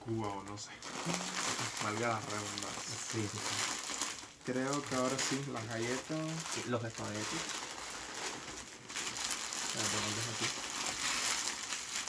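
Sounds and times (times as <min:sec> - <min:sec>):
plastic packaging rustling: 0:00.2 - 0:12.0
person humming: 0:00.9 - 0:01.8.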